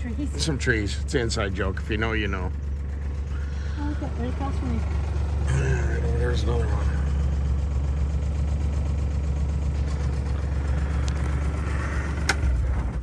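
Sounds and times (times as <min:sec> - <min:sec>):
utility buggy engine rumble: 0:00.0 - 0:13.0.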